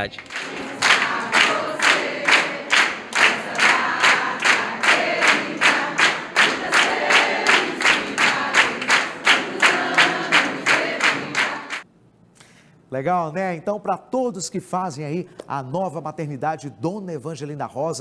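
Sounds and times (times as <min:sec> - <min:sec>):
people clapping in time: 0:00.0 - 0:11.8
group singing birthday song: 0:00.3 - 0:11.8.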